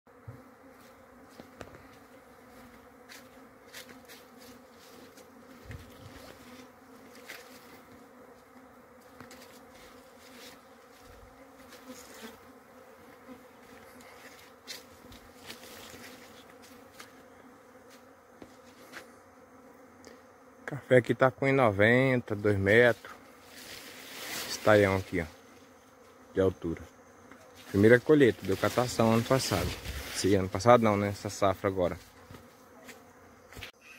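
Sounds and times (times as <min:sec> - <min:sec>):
bees buzzing: 0:00.1 - 0:33.9.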